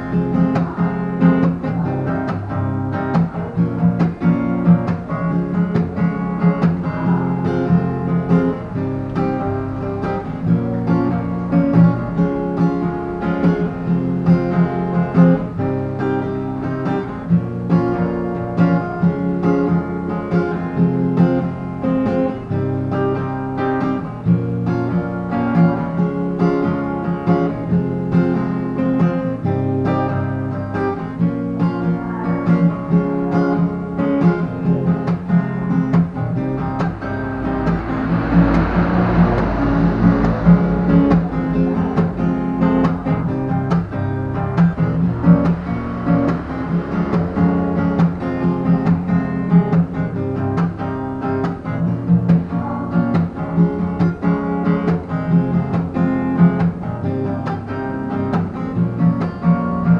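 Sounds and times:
acoustic guitar strumming: 0.0 - 59.9
rushing noise: 4.7 - 17.2, 20.3 - 59.9.

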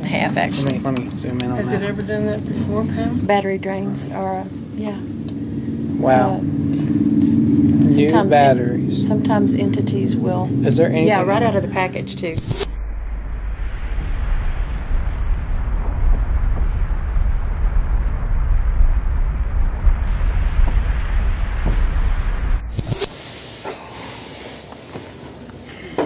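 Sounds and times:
deep steady rumble with hiss: 0.0 - 26.0.

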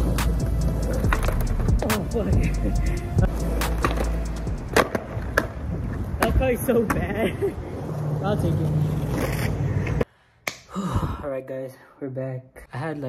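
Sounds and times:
skateboard wheels rolling on asphalt: 0.0 - 10.1
skateboard clacks: 3.6 - 7.1.

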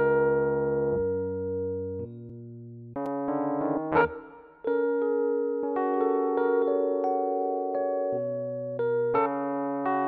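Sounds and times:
blues piano chord over bass: 0.0 - 2.0.

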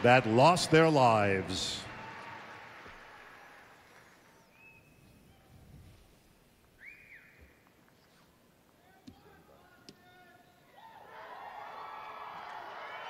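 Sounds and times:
public-address voice echo: 0.0 - 1.9
faint whistle-like tones: 3.8 - 5.9, 6.7 - 8.4.

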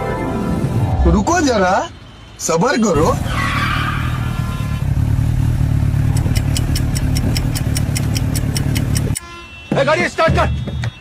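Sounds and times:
motorcycle engine idling: 4.8 - 9.2
fast even ticking: 6.0 - 9.2.

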